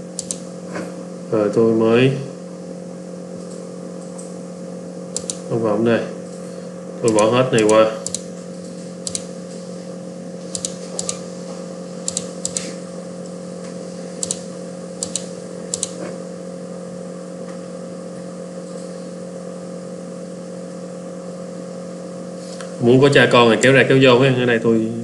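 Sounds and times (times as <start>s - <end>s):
low electrical hum: 0.0s - 25.0s
computer mouse clicking: 0.2s - 0.4s, 5.2s - 5.4s, 7.1s - 8.3s, 9.0s - 9.3s, 10.6s - 11.2s, 12.0s - 12.7s, 14.2s - 14.4s, 15.0s - 16.0s.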